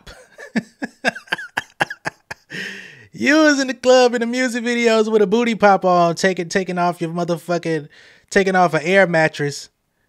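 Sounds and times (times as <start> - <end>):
man laughing: 0.0 - 2.9
wheezy breath: 2.5 - 3.1, 7.9 - 8.3.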